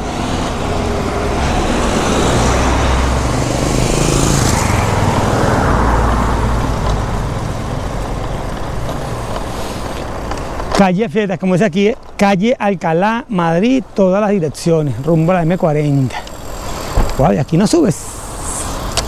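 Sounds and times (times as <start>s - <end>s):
street traffic noise: 0.0s - 19.0s.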